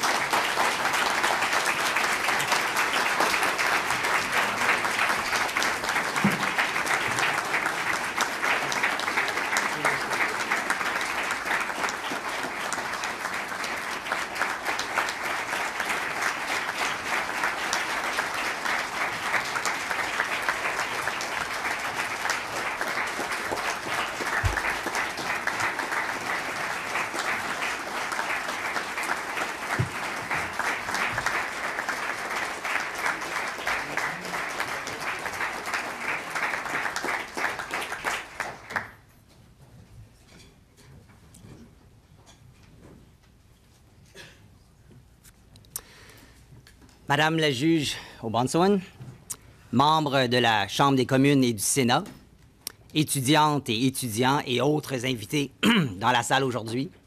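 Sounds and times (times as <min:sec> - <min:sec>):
audience applauding: 0:00.0 - 0:39.1.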